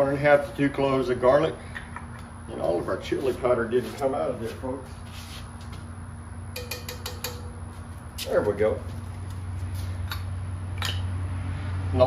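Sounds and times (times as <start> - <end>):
spoon tapping cast iron skillet: 6.6 - 7.6.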